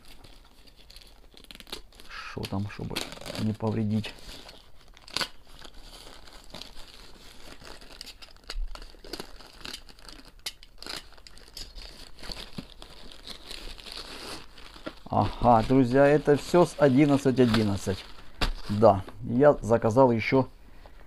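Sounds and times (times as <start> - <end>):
plastic bag crinkling and tearing: 0.0 - 20.0.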